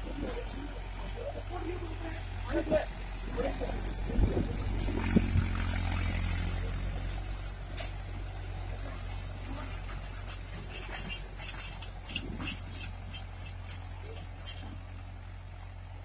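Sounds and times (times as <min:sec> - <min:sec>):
tractor diesel engine running: 0:00.0 - 0:16.0.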